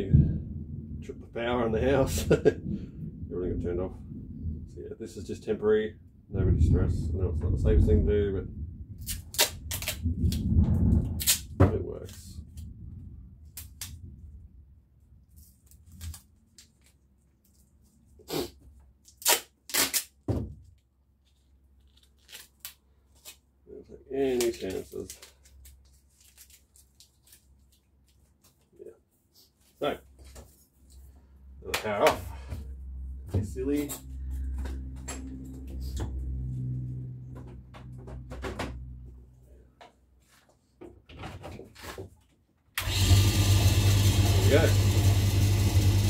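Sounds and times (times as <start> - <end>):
man talking: 1.0 - 2.5, 3.3 - 4.0, 4.7 - 8.5, 11.6 - 12.4, 23.7 - 25.2, 29.8 - 30.1, 31.6 - 32.6, 33.3 - 34.0, 44.3 - 44.8
electric motor humming: 42.8 - 46.0.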